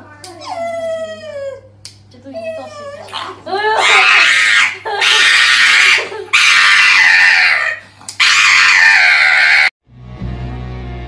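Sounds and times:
high-pitched screams: 3.9 - 9.7.

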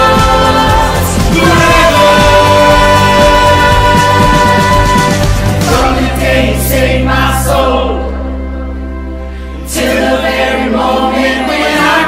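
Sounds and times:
acoustic guitars keyboard and drums: 0.0 - 6.4
group singing worship song: 0.0 - 8.4, 9.6 - 12.0.

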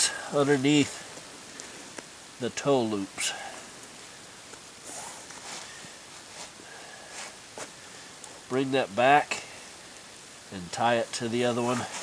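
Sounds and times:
cord rustling and scraping: 4.5 - 8.4, 11.5 - 12.0.

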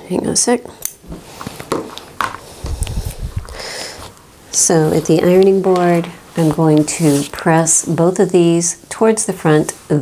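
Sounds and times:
fabric rubbing and bumping: 1.1 - 7.8.

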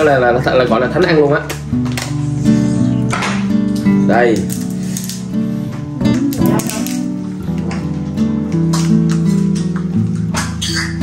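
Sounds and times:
strummed acoustic guitar: 0.3 - 11.0.

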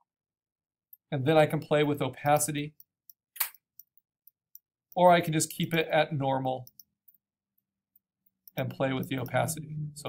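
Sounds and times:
sharp click: 3.1 - 3.9.

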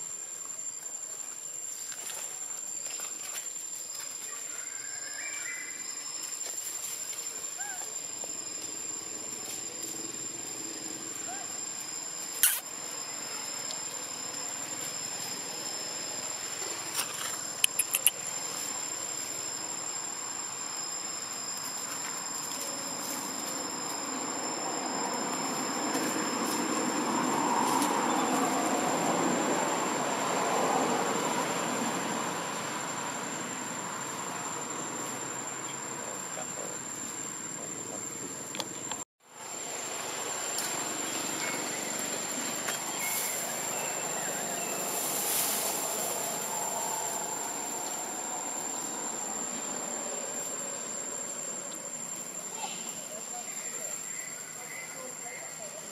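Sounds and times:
insects droning: 0.0 - 55.9
sharp clicks: 17.6 - 18.2.

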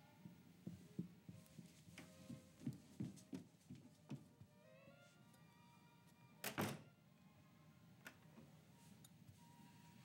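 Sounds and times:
faint film score music: 0.0 - 10.0.

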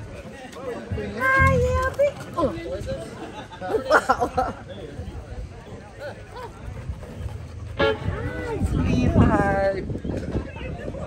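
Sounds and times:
brass instrument tooting: 7.8 - 8.6.

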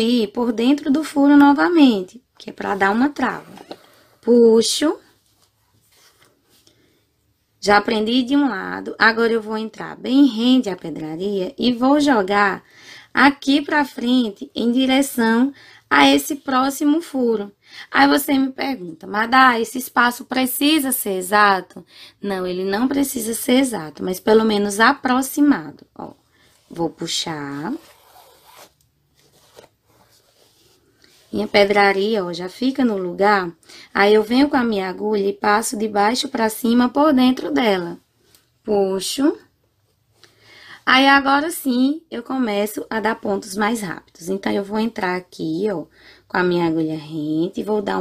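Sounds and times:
fabric rustling: 26.0 - 33.1.

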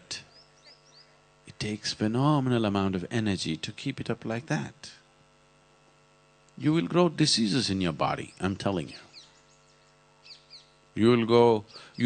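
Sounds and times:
faint mains hum: 0.0 - 12.0
high bird chirps: 0.3 - 1.2, 8.3 - 10.8.

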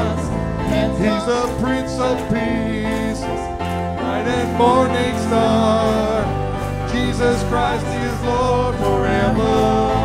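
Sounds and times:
gospel band playing: 0.0 - 10.0
guitar: 0.0 - 10.0
keyboard: 0.0 - 10.0
voices singing: 0.0 - 10.0.

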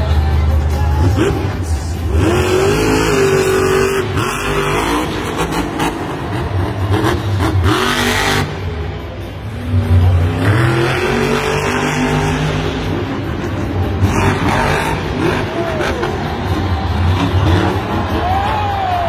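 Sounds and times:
truck engine revving hard: 0.9 - 18.6.

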